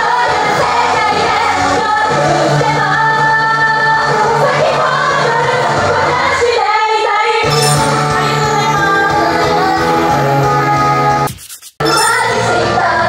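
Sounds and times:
women singing pop song: 0:00.0 - 0:11.3, 0:12.0 - 0:13.0
backing track: 0:07.4 - 0:10.8.

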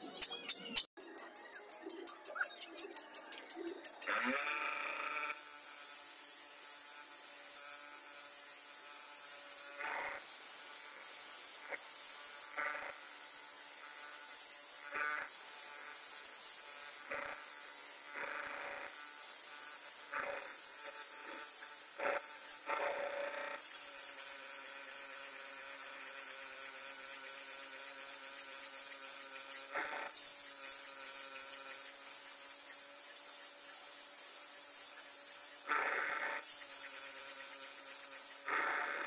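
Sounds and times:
bench grinder whine: 0:01.2 - 0:39.0.

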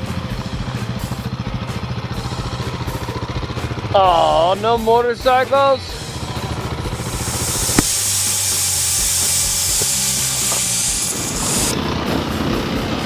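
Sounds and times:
dirt bike engine running: 0:00.0 - 0:13.0
loud hiss: 0:06.9 - 0:11.8.

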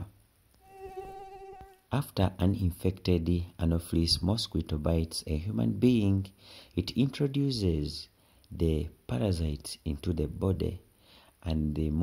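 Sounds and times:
mosquito buzzing: 0:00.6 - 0:01.9.

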